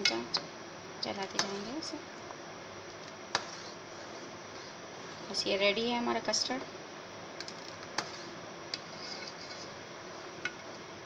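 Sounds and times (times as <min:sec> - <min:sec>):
steady faint hiss: 0:00.0 - 0:11.0
spoon stirring in metal pan: 0:01.2 - 0:01.9, 0:03.0 - 0:05.4, 0:07.4 - 0:10.7.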